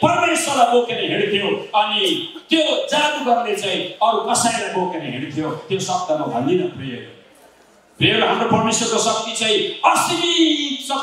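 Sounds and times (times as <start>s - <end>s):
man preaching through microphone: 0.0s - 7.2s, 8.0s - 11.0s.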